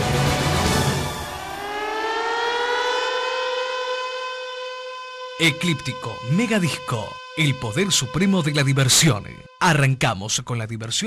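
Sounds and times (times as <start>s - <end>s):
rising siren-like electronic tone: 0.7s - 9.7s.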